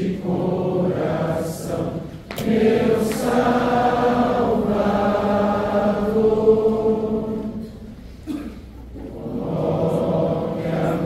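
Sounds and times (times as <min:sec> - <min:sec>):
congregation singing a hymn: 0:00.0 - 0:08.4, 0:09.0 - 0:11.0.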